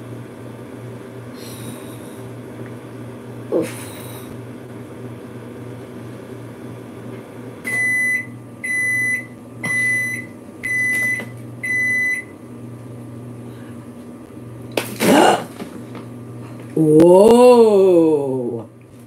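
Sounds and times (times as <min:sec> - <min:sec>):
steady low hum: 0:00.0 - 0:19.0
electronic appliance beeps: 0:07.6 - 0:12.4.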